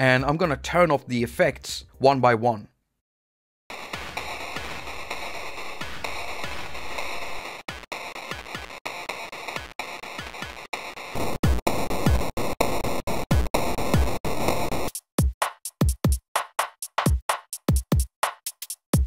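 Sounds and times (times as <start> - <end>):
drum machine loop: 3.7 - 19.0.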